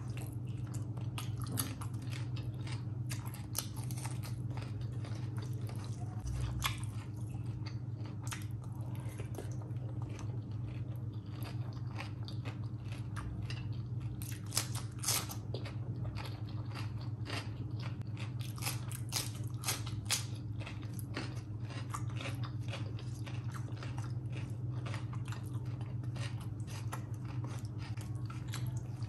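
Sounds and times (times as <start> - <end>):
low steady hum: 0.0 - 29.0
person chewing food: 0.0 - 29.0.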